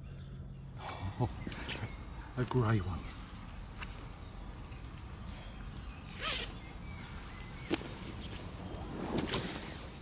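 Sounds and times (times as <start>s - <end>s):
zip rasp: 6.1s - 6.6s.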